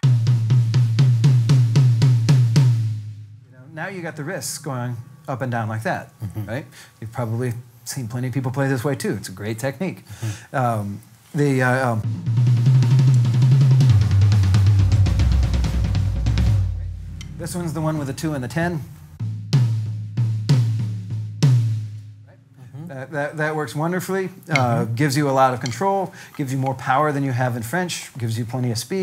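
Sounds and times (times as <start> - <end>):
tom drum strokes: 0.0 - 7.6, 11.7 - 22.2, 24.3 - 28.4.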